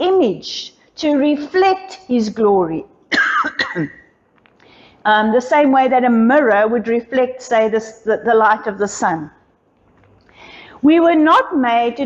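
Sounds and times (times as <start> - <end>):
woman coughing: 3.1 - 4.1.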